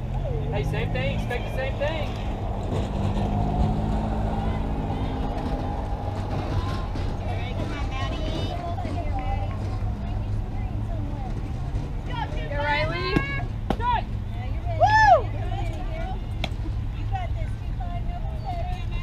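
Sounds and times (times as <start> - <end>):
distant calls and chatter: 0.0 - 19.0
steady low rumble: 0.0 - 19.0.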